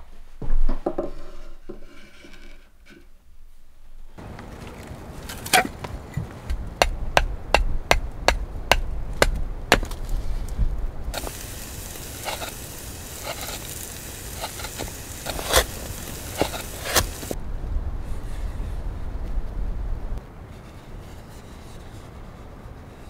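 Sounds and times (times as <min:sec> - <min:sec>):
knife carving wood: 0:06.5 - 0:10.3, 0:11.2 - 0:17.4
steady hiss: 0:06.6 - 0:19.2
chopping strikes on wood: 0:06.8 - 0:10.0.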